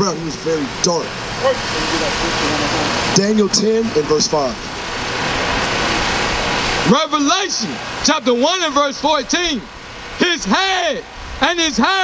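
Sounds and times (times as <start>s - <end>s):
faint voices: 0.0s - 4.6s
road traffic rushing past: 0.0s - 11.9s.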